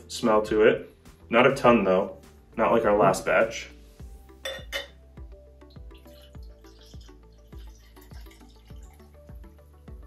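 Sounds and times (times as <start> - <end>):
background music with steady beat: 0.0 - 10.0
fizzy drink pouring into glass: 5.6 - 9.7.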